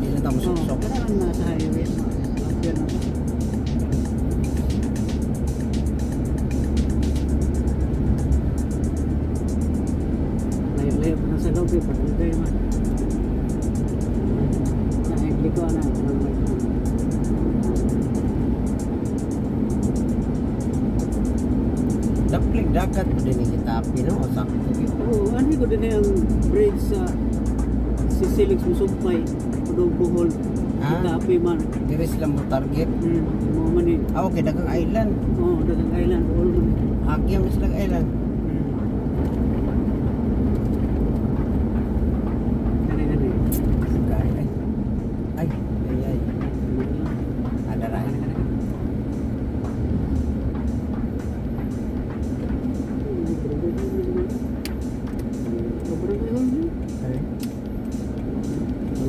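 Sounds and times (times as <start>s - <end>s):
indistinct voices: 0.0s - 3.2s, 45.3s - 57.5s
background music: 0.0s - 59.0s
car engine and road drone: 0.0s - 59.0s.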